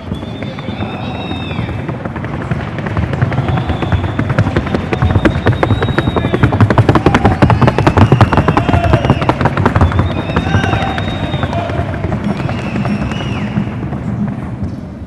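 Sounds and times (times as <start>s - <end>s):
horse hooves drumming on wood: 0.0s - 15.0s.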